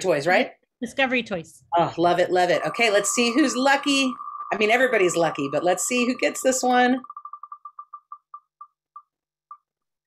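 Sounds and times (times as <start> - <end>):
spinner wheel ticking: 2.2 - 9.6.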